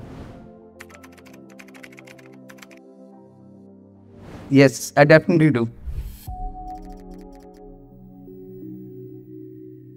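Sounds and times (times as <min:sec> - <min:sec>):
soft background music: 0:00.0 - 0:09.9
keyboard key clicks: 0:00.8 - 0:02.8.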